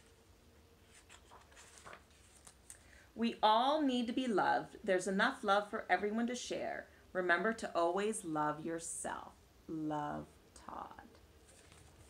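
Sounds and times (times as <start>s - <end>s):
book page turning: 0.8s - 2.8s, 11.4s - 12.0s.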